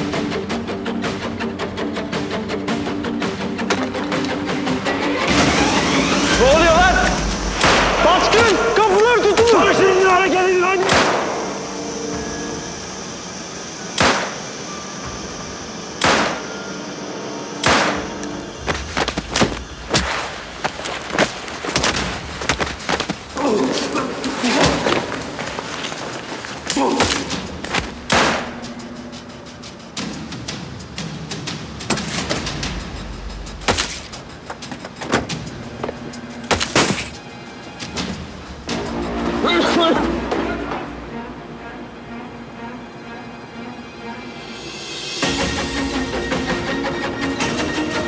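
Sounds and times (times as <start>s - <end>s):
dramatic orchestral score: 0.0s - 48.0s
gunshots: 7.5s - 8.7s, 10.8s - 11.6s, 14.0s - 14.4s, 16.0s - 16.5s, 17.6s - 18.2s, 28.0s - 28.7s.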